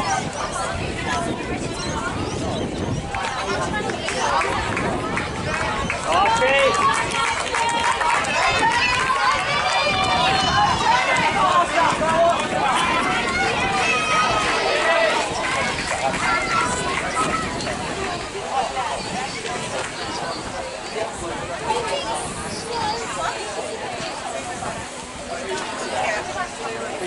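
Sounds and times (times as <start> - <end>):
spectators shouting and cheering: 0.0 - 27.0.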